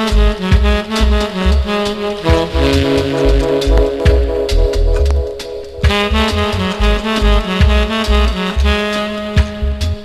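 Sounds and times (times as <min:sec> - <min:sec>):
reggae music with horns: 0:00.0 - 0:10.0.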